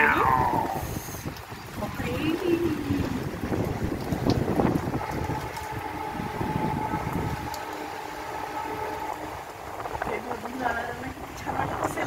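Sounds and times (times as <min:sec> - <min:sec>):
heavy rain: 0:00.0 - 0:12.0
wind buffeting the microphone: 0:00.0 - 0:12.0.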